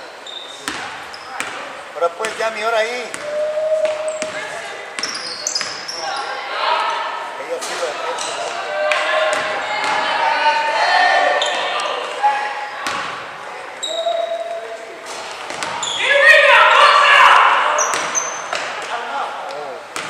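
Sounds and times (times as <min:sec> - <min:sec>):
voices calling out: 0:02.8 - 0:19.9.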